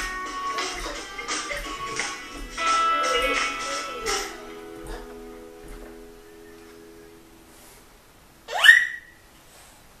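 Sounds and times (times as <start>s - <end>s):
toddler squealing: 8.5s - 9.2s.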